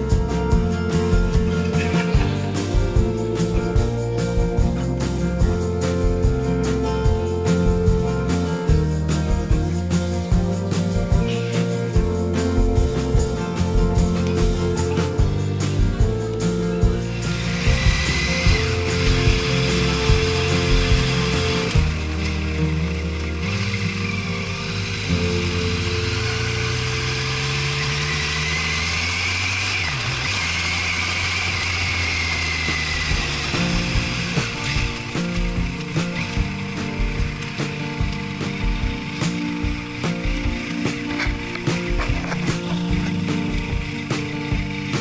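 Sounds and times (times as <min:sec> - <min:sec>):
background music: 0:00.0 - 0:30.0, 0:32.1 - 0:45.0
motorcycle engine accelerating: 0:00.0 - 0:45.0.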